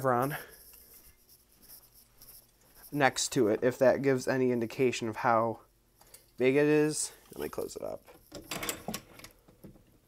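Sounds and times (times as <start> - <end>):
rustling handling noise: 0.0 - 3.7, 6.0 - 8.4.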